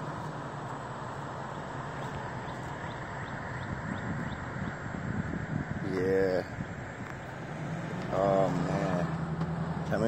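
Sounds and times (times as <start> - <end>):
car engine hum: 0.0 - 10.0.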